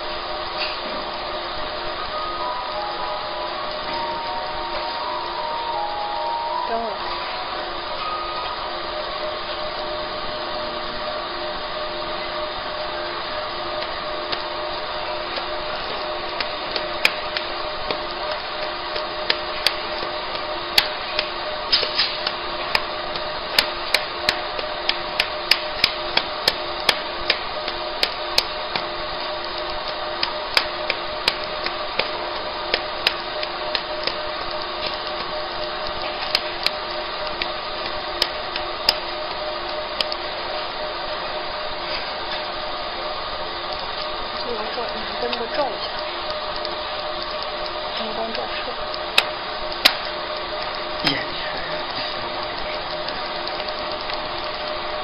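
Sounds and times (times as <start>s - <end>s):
laser machine fans humming: 0.0s - 55.0s
sharp clicks: 16.2s - 40.2s, 44.8s - 50.8s.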